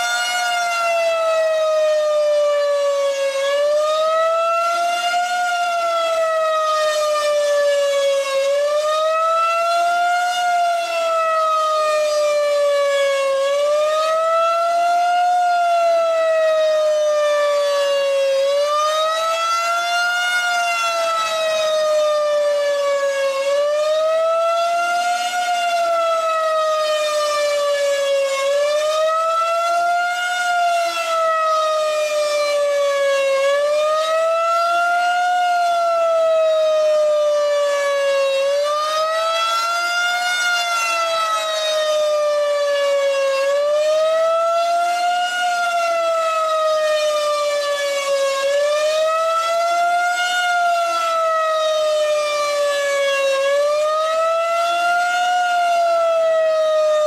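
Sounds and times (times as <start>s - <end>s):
rotating siren wailing: 0.0s - 57.0s.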